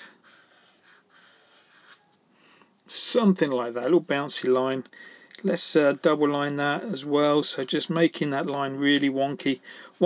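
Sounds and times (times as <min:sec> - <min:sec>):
marker scratching on paper: 0:00.0 - 0:02.2.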